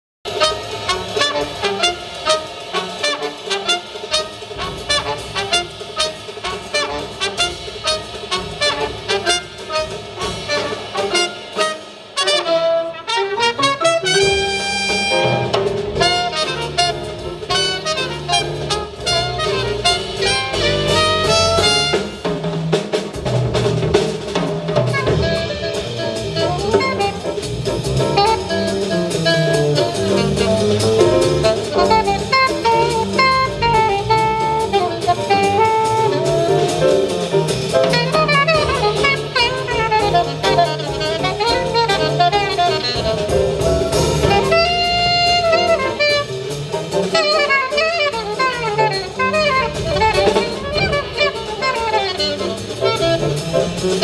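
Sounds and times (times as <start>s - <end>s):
drum kit: 0.2s - 54.0s
trumpet: 0.3s - 23.2s, 23.9s - 54.0s
grand piano: 0.3s - 54.0s
saxophone: 10.5s - 22.2s, 24.9s - 37.1s, 37.8s - 54.0s
upright bass: 25.0s - 47.3s.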